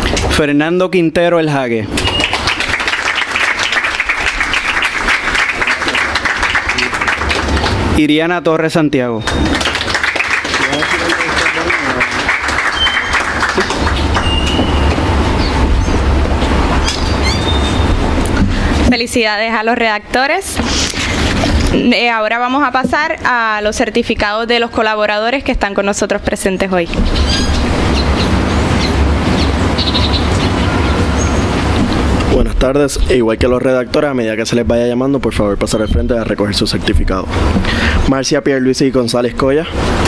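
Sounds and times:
steady low rumble: 0:01.8 - 0:08.2, 0:09.3 - 0:40.0
high bird chirps: 0:02.0 - 0:02.6, 0:12.6 - 0:16.1, 0:16.8 - 0:18.0, 0:27.0 - 0:31.5
audience applauding: 0:02.0 - 0:08.0, 0:09.2 - 0:15.8.

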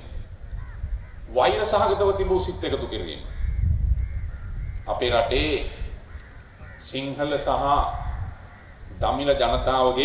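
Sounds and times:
crows cawing: 0:00.5 - 0:01.6, 0:03.1 - 0:05.2, 0:05.9 - 0:07.3, 0:08.0 - 0:09.1.

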